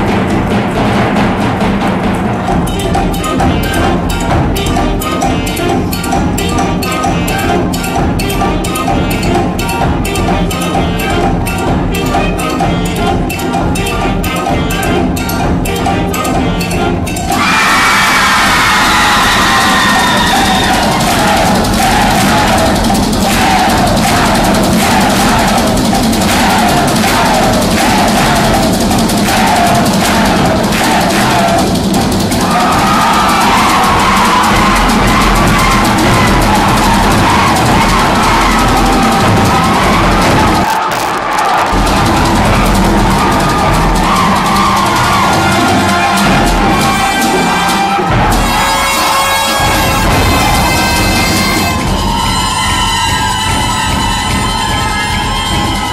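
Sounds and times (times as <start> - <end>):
concert band playing: 0.0 - 55.9.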